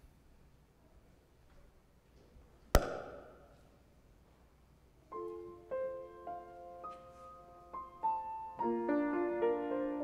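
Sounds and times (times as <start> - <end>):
sharp knock with ringing tail: 2.8 - 3.6.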